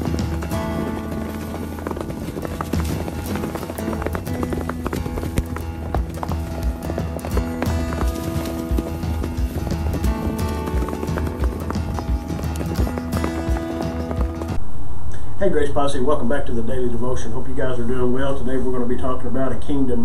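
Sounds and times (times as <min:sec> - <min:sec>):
horses galloping: 0:00.0 - 0:14.6
music with sustained notes: 0:00.0 - 0:14.6.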